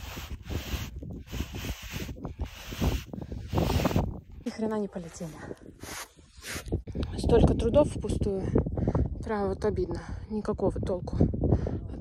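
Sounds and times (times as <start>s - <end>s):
board scraping through sand: 0.0s - 4.1s
wind buffeting microphone: 0.0s - 12.0s.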